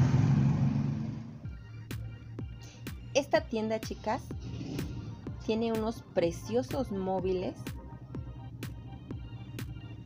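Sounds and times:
low rumble with hiss: 0.0s - 10.0s
background music with beat clicks: 1.5s - 10.0s.

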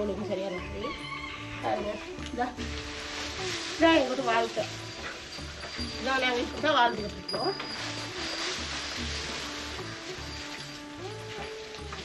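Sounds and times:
woman talking: 0.0s - 1.0s, 1.6s - 2.7s, 3.8s - 4.8s, 5.9s - 7.6s.

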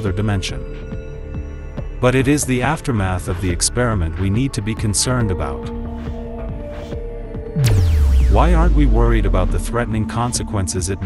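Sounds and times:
low drone music: 0.0s - 11.0s
downward sweep: 7.6s - 10.0s
falling bass hit: 7.6s - 10.2s.

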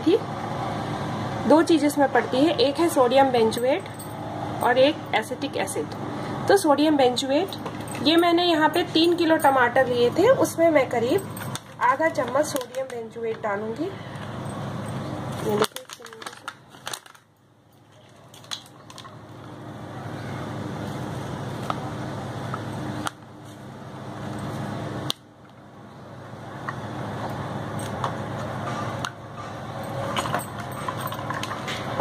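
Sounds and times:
steady background noise: 0.0s - 32.0s
paper packet crinkling: 15.4s - 19.2s.

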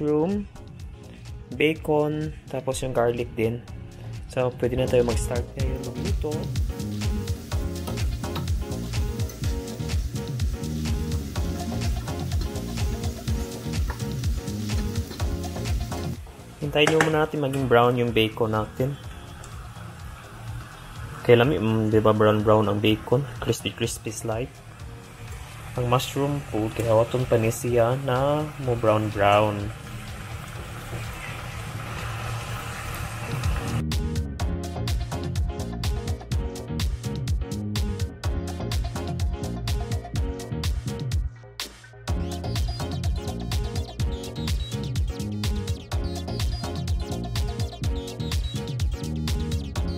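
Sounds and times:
background music with steady beat: 0.0s - 30.6s, 33.2s - 49.9s
food sizzling in pans: 5.7s - 16.2s, 18.6s - 33.8s.

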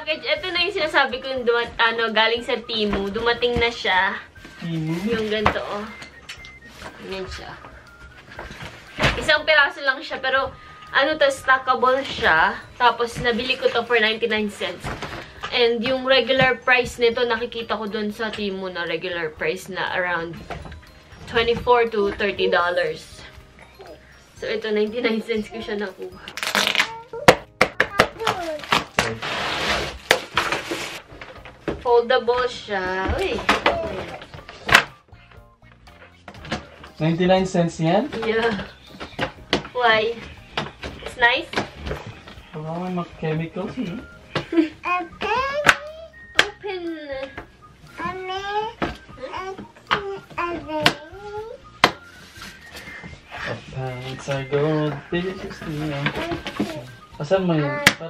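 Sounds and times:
plastic wrap crinkling: 26.2s - 27.2s, 28.2s - 31.6s
child making vocal sounds: 26.8s - 27.3s, 27.9s - 28.6s, 44.8s - 46.1s, 48.0s - 51.6s
cardboard scraping: 28.7s - 31.3s.

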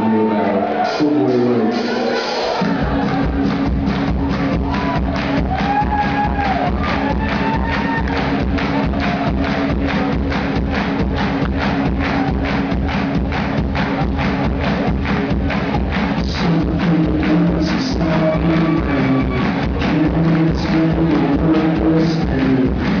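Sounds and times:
electronic rock band playing: 0.0s - 23.0s
driving drum beat: 0.9s - 23.0s
low bass drone: 2.6s - 23.0s.

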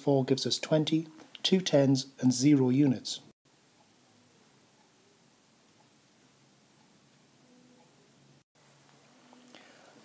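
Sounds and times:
faint recording hiss and hum: 0.0s - 10.0s.

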